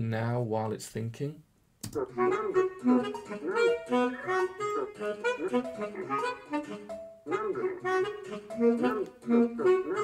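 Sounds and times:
sampled saxophone and instruments: 2.0 - 10.0.

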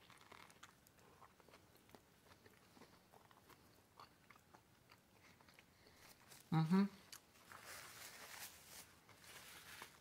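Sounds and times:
paper napkin rustle: 7.4 - 10.0.

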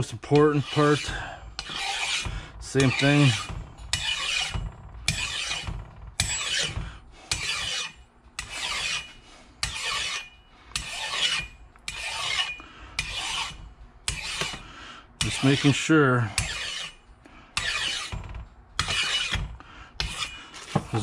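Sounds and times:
file rasping on metal gear: 0.0 - 14.6, 15.2 - 17.0, 17.6 - 18.2, 18.8 - 21.0.

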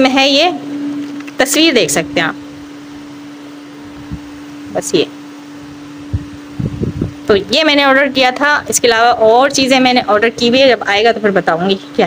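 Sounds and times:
fan running: 0.0 - 12.0.

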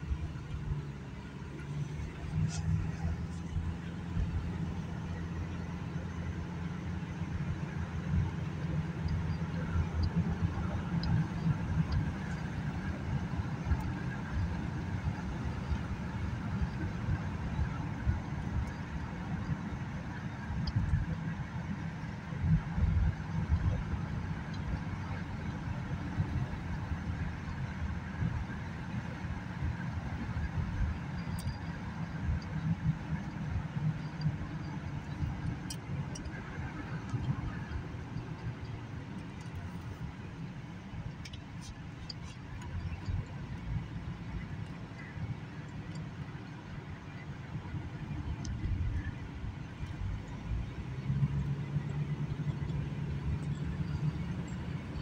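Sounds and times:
car cabin road rumble: 0.0 - 55.0
faint clicks: 31.1 - 40.1, 40.9 - 46.8.

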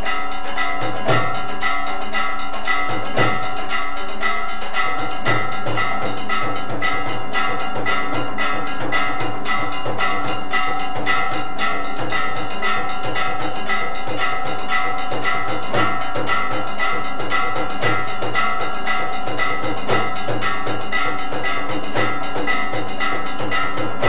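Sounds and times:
drum and percussion strikes: 0.0 - 24.0
temple bells ringing: 0.0 - 24.0.

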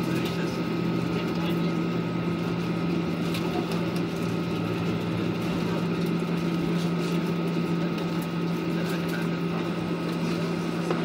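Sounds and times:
airliner cabin engine hum: 0.0 - 11.0.

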